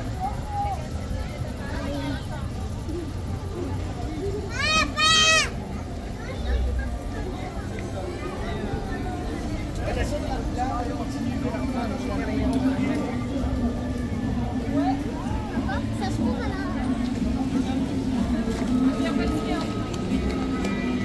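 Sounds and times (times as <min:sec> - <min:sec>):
crowd walking and chatting: 0:00.0 - 0:21.0.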